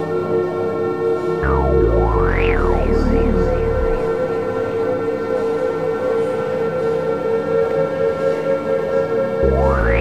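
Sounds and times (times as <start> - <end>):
sustained electronic siren-like tone: 1.4 - 5.8, 9.4 - 10.0
ambient electronic music: 1.4 - 6.6, 9.4 - 10.0.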